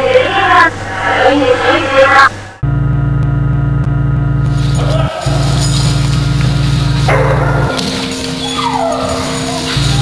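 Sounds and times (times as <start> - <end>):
droning background music: 2.6 - 10.0
dog yipping: 7.1 - 10.0
dog whining: 8.1 - 10.0.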